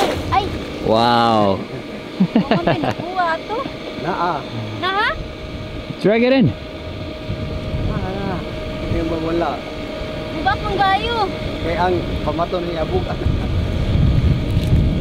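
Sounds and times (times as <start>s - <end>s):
low mechanical drone: 0.0s - 15.0s
wind rumbling on microphone: 4.6s - 15.0s.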